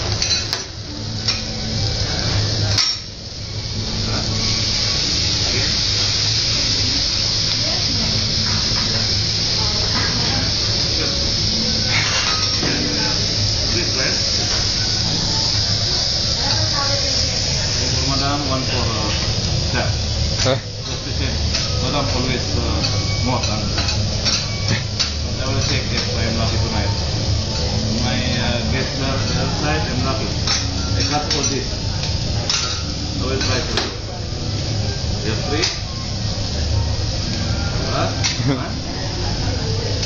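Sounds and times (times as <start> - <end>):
seafood sizzling: 0.0 - 40.0.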